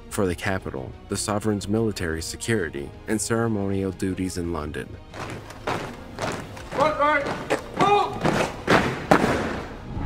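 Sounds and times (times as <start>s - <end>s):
boots stamping and rifles struck: 5.1s - 9.8s
shouted word of command: 6.7s - 8.4s.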